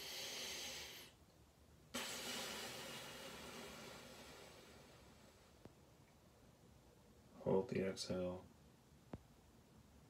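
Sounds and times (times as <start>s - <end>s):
person's slow exhale: 0.0s - 1.2s, 2.0s - 5.6s.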